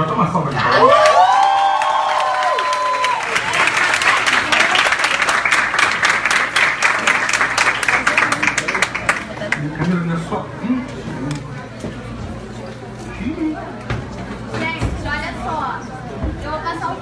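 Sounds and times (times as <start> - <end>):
students clapping: 0.8 - 9.7.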